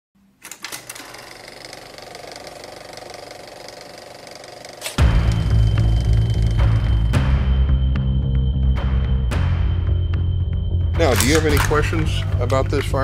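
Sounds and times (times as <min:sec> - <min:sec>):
fast mechanical clattering: 0:00.5 - 0:06.9
loud bass-heavy music: 0:05.0 - 0:12.5.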